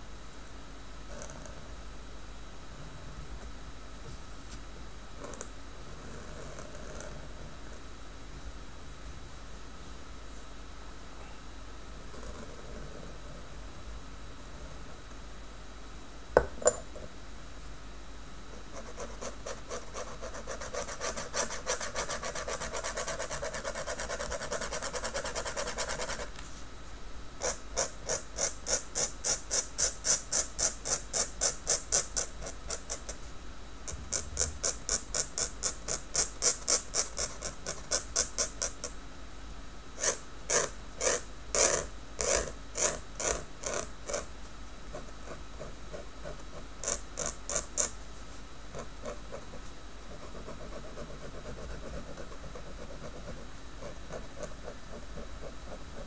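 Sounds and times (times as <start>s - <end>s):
dip pen nib scratching on paper: 18.5s - 26.4s, 27.4s - 33.3s, 33.9s - 38.9s, 40.0s - 44.3s, 44.9s - 48.0s, 48.7s - 56.0s.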